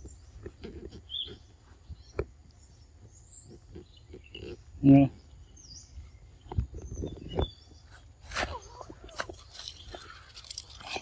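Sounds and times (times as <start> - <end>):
bird chirps: 0.0 - 11.0.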